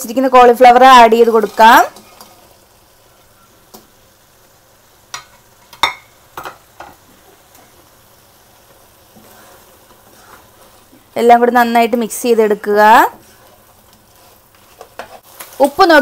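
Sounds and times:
food sizzling in a wok: 0:00.0 - 0:16.0.

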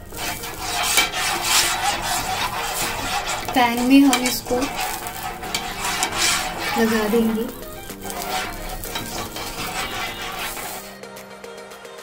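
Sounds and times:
butter sizzling in a pan: 0:00.0 - 0:11.0
steel spoon stirring in a pan: 0:00.0 - 0:11.0.

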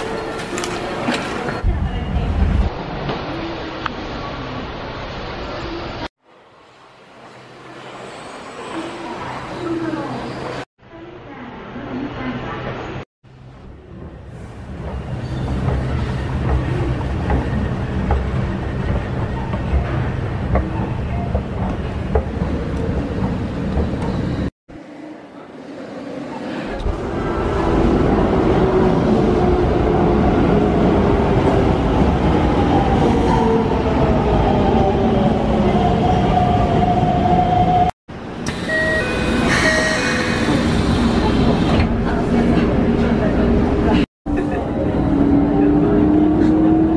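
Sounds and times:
escalator and platform noise: 0:12.5 - 0:46.9
train rumble: 0:13.3 - 0:24.5
short electronic beeps: 0:38.5 - 0:40.4.

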